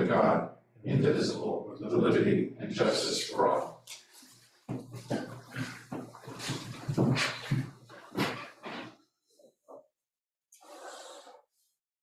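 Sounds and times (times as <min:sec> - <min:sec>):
chairs shuffling and scraping: 0:04.0 - 0:08.9.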